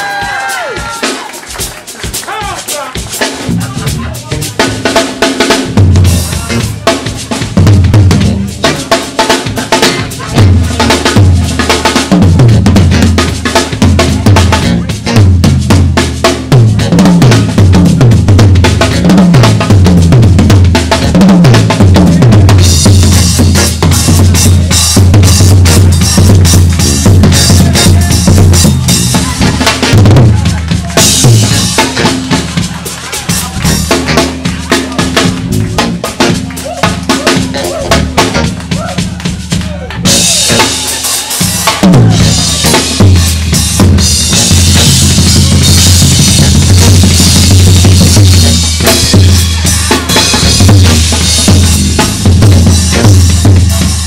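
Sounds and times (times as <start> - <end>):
drum kit solo: 0.0 - 54.0.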